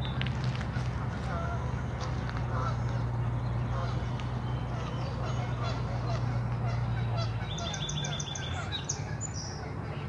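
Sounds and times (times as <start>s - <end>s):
steady low rumble: 0.0s - 10.0s
geese honking: 0.7s - 10.0s.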